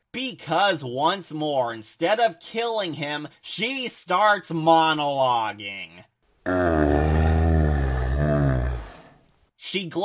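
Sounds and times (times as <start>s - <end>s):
man groaning: 6.5s - 9.1s.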